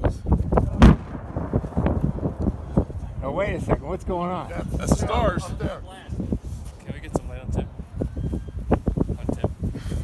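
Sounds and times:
firework mortar boom: 0.5s - 3.8s
low rumble: 0.7s - 4.5s.

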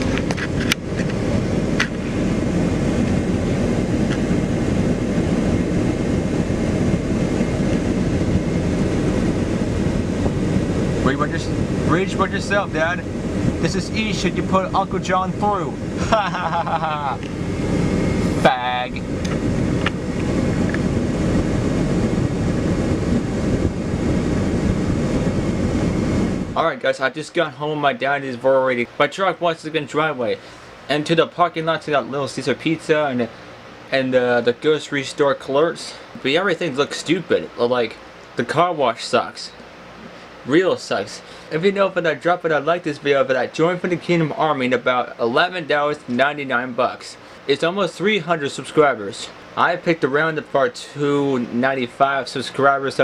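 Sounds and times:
wind buffeting microphone: 0.0s - 26.6s
vehicle cabin engine and road noise: 0.0s - 53.0s.

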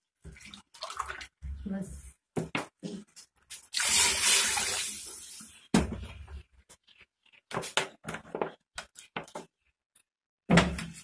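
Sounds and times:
water pouring into a pot: 0.2s - 1.4s, 3.6s - 5.5s.

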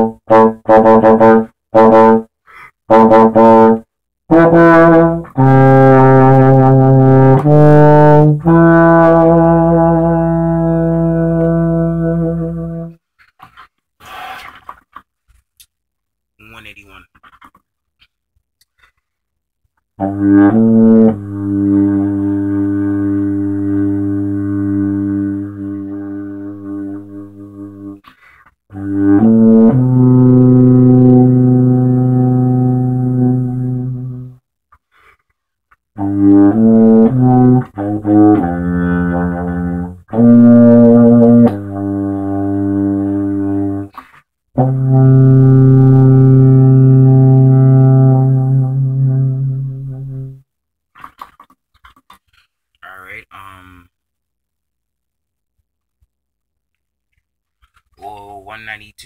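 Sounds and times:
solo euphonium: 0.0s - 13.1s, 20.0s - 28.1s, 28.7s - 34.4s, 36.0s - 50.5s
euphonium long low note: 20.0s - 28.0s, 28.8s - 34.4s, 44.6s - 50.4s.

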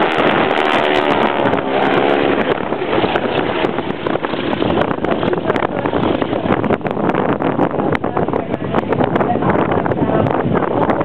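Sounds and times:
biplane engines droning overhead: 0.0s - 11.0s
wind buffeting microphone: 0.0s - 11.0s.

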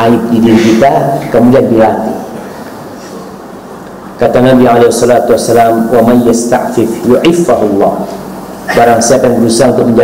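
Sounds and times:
low rumble and hiss: 0.0s - 10.0s
person speaking: 0.0s - 10.0s.

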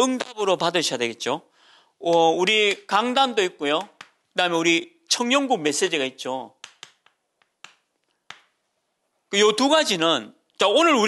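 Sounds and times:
chalk tapping on chalkboard: 6.6s - 8.6s.

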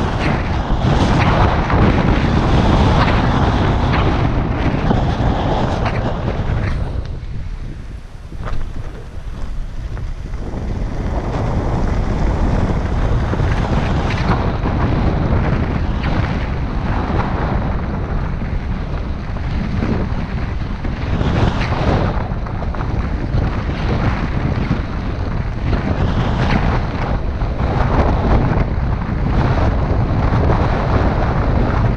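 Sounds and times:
tyre and road noise: 0.0s - 31.9s
wind buffeting microphone: 0.0s - 31.9s.

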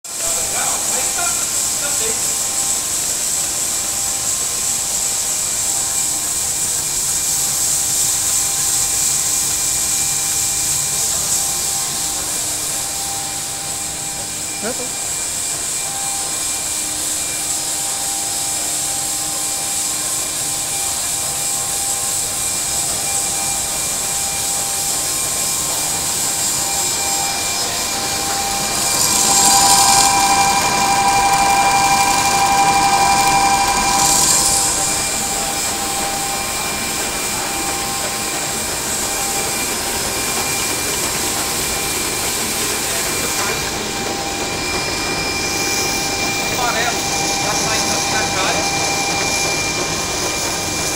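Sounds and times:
machinery whining: 0.1s - 50.9s
mechanical hiss: 0.1s - 50.9s.

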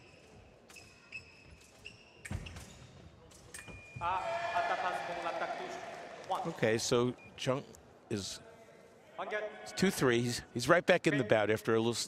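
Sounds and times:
loud shouting: 4.0s - 6.2s.

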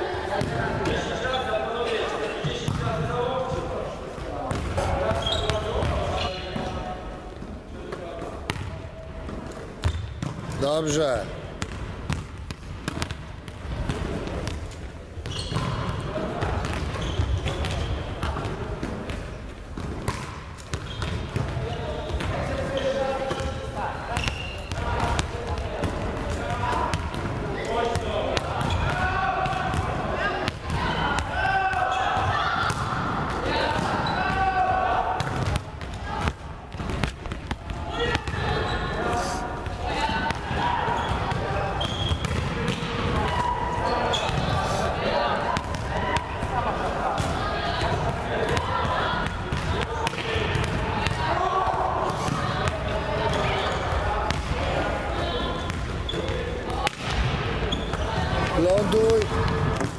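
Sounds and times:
indistinct chatter: 21.2s - 59.9s.

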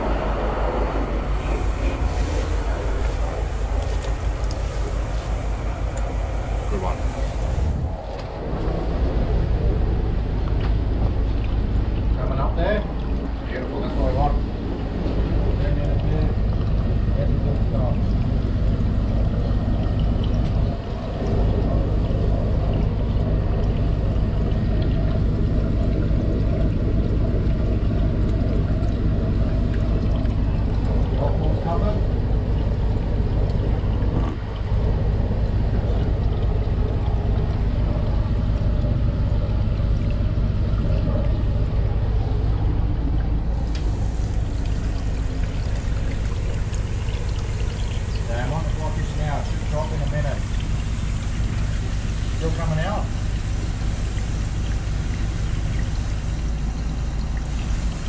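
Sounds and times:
drain jetter engine droning: 0.0s - 58.0s.

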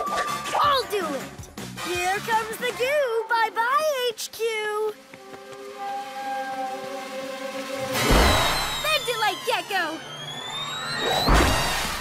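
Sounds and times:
rising whistle-like tone: 5.7s - 12.0s.

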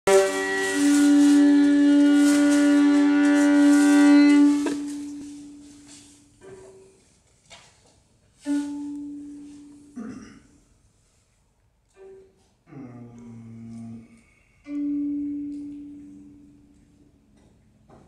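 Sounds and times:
held instrumental note: 0.1s - 6.9s, 14.6s - 16.7s.

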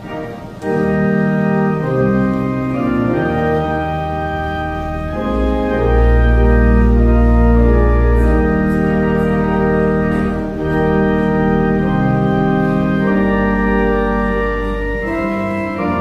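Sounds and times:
church organ chords: 0.0s - 16.0s
deep organ pedal bass: 0.0s - 16.0s.

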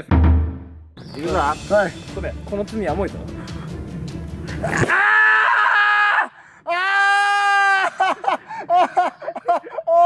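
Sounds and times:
person screaming: 4.7s - 8.1s.

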